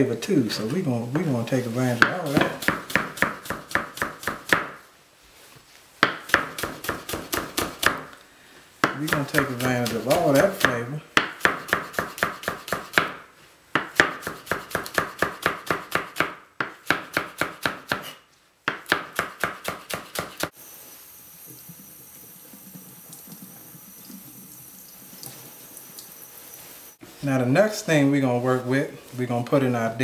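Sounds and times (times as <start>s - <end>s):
knife chopping on plastic cutting board: 2.0s - 4.8s, 6.0s - 8.1s, 8.8s - 13.2s, 13.8s - 20.5s.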